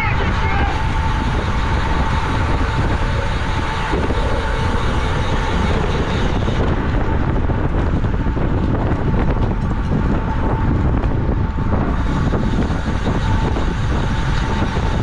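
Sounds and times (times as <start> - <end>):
tyre and road noise: 0.0 - 15.0
wind rushing over microphone: 0.0 - 15.0.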